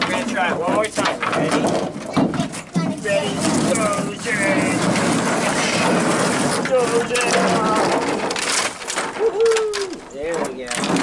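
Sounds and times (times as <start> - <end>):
sticks scraping and clattering: 0.0 - 11.0.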